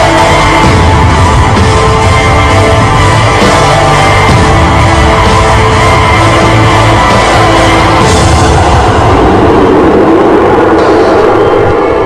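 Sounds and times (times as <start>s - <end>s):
dense rumbling noise: 0.0s - 12.0s.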